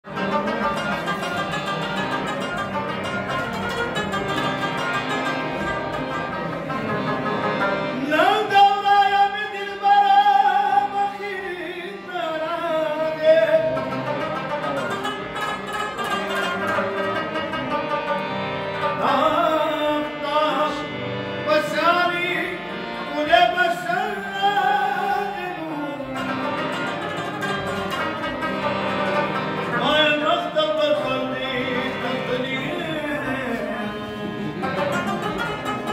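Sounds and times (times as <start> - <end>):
harmonium sustained tones: 0.0 - 35.9
plucked lute runs: 0.1 - 8.0, 13.5 - 19.6, 26.0 - 35.9.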